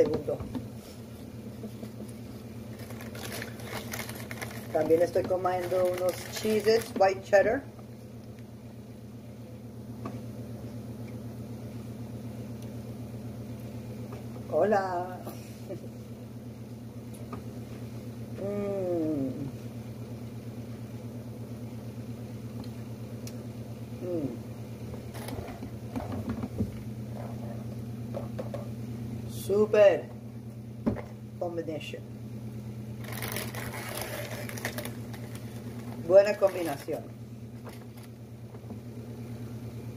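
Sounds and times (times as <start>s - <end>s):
steady low electrical hum: 0.0s - 39.9s
plastic bag crinkling: 2.6s - 7.0s, 33.0s - 37.0s.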